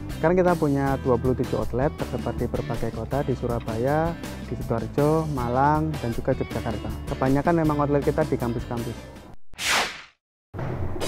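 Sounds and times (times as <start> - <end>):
whoosh sound effect: 9.6 - 10.2.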